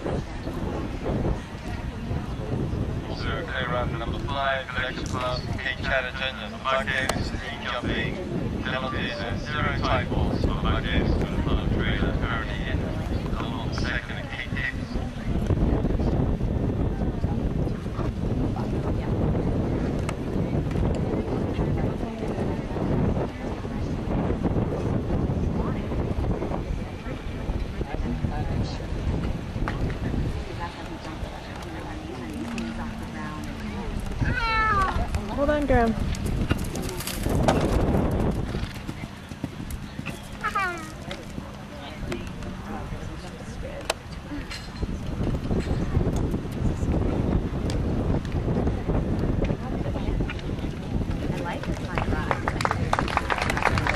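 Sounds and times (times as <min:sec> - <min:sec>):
wind buffeting microphone: 0:00.0 - 0:53.9
horse hooves galloping on sand: 0:24.7 - 0:44.2, 0:44.9 - 0:53.9.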